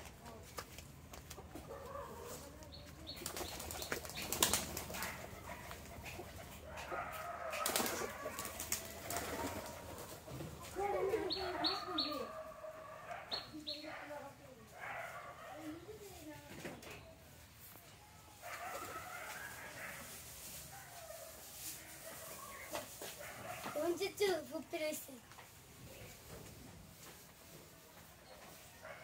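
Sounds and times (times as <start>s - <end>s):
pigeon wings flapping: 3.2s - 6.5s, 7.6s - 10.2s.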